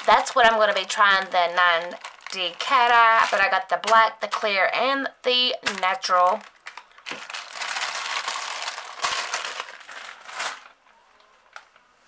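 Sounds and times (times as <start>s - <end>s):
plastic bags crinkling: 0.0s - 4.7s, 5.4s - 11.8s.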